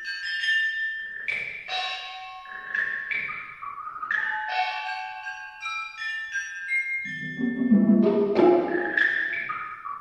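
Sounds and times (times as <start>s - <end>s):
tuned metal percussion notes: 7.0s - 9.6s.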